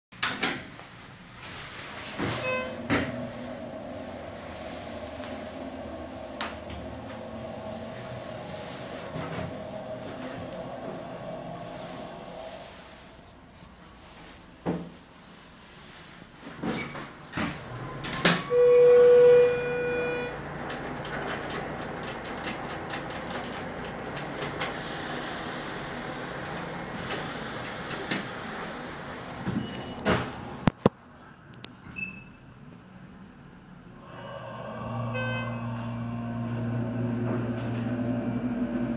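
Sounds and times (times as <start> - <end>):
elevator hum and low rumble: 0.7 - 38.9
elevator doors closing thud: 2.0 - 12.2, 17.4 - 30.6, 34.5 - 38.9
elevator electronic beep: 2.4 - 2.9, 17.8 - 20.5, 29.5 - 30.1.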